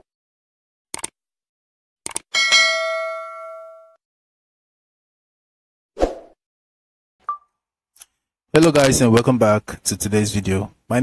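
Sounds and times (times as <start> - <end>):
notification bell ding: 2.4 - 4.0.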